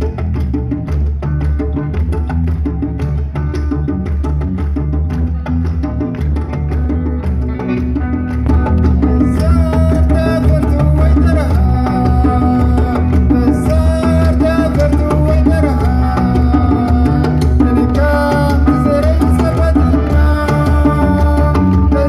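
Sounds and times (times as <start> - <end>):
bass: 0.0 - 22.0
electric guitars: 0.0 - 22.0
hand drum: 0.0 - 22.0.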